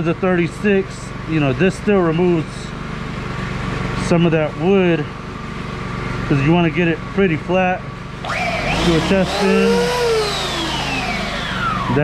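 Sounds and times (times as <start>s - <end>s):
belt sander motor winding down: 8.2s - 12.0s.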